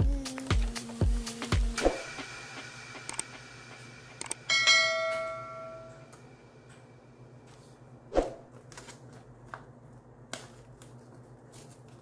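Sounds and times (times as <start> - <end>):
bell chime: 4.5 - 6.1.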